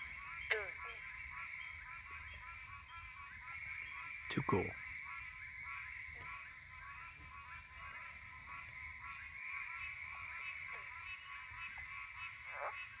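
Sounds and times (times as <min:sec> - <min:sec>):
tree frog honking: 0:00.0 - 0:13.0.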